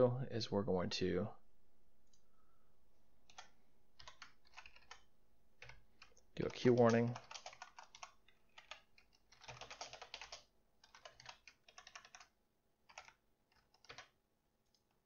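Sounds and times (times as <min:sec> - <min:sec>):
computer keyboard typing: 0:03.2 - 0:14.9.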